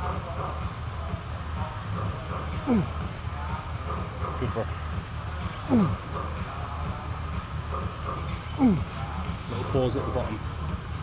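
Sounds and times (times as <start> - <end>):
background music with deep bass: 0.0 - 11.0.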